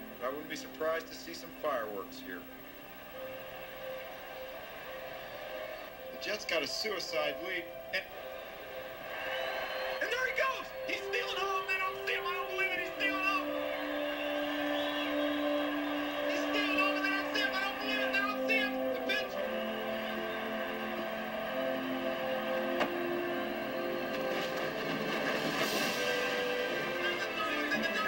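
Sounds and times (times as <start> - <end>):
crowd cheering: 0.0 - 28.0
orchestral music with held chords: 0.0 - 28.0
announcer shouting: 10.0 - 22.6, 26.8 - 28.0.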